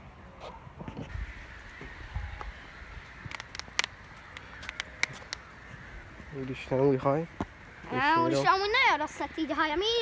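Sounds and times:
faint bird calls: 0.2s - 9.7s
sharp clicks: 3.2s - 5.5s.

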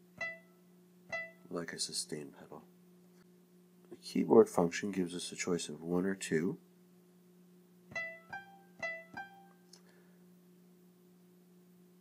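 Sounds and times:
piano single notes: 0.2s - 1.5s.

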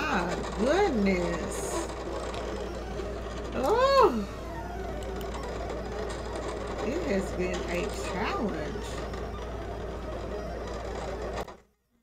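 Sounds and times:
cutting machine motors whirring: 0.0s - 11.8s.

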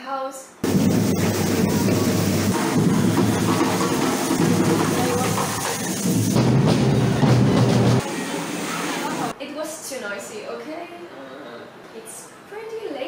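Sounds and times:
fireworks hissing and crackling: 0.6s - 9.3s
drumming: 0.6s - 9.4s
crowd noise: 0.6s - 9.5s.

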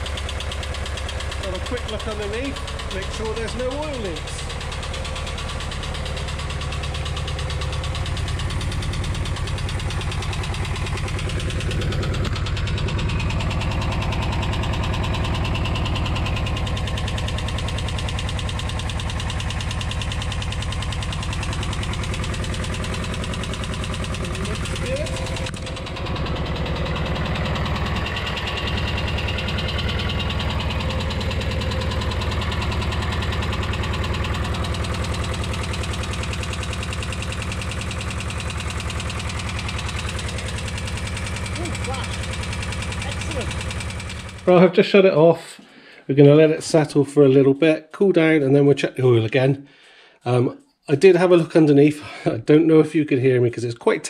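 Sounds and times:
tappet ticking: 0.0s - 44.5s
van engine idling: 0.0s - 44.9s.

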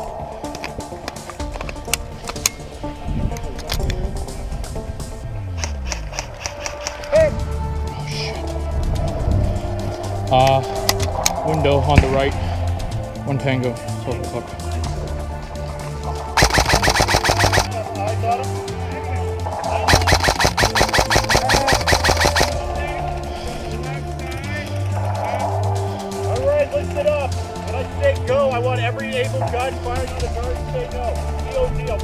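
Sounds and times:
background music: 0.0s - 32.0s
airsoft rifle full-auto bursts: 16.4s - 17.7s, 19.9s - 22.6s.

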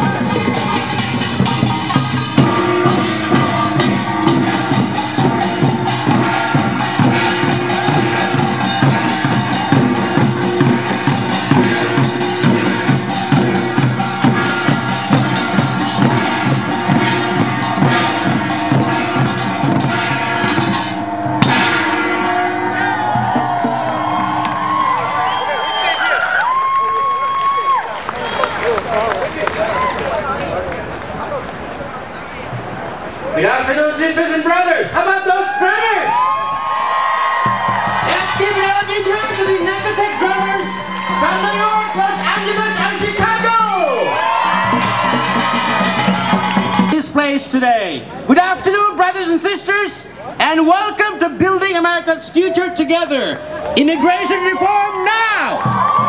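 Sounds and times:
barrel drums: 0.0s - 26.6s, 37.2s - 47.6s
crowd voices: 0.0s - 56.0s
metal gongs ringing: 0.1s - 25.8s, 38.0s - 46.9s
long held high note: 1.6s - 26.6s.

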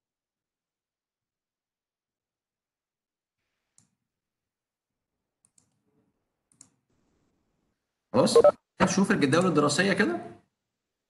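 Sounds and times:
faint computer mouse clicks: 5.4s - 5.8s.

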